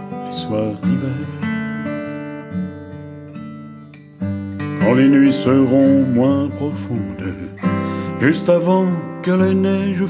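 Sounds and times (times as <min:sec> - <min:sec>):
strummed acoustic guitar chords: 0:00.0 - 0:10.0.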